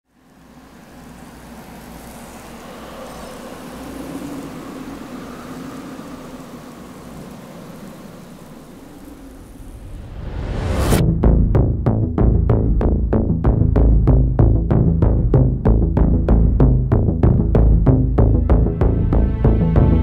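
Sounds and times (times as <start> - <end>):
rumbling ambient noise: 0.1 - 20.0.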